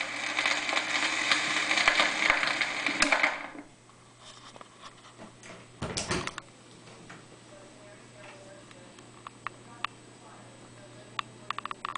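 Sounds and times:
vinyl stylus hiss and crackle: 0.0 - 5.2, 10.6 - 11.9
faint hum: 0.0 - 11.9.

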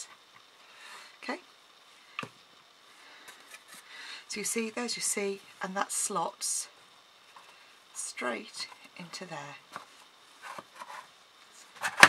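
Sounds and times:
wood rubbing and scraping: 9.7 - 12.0.

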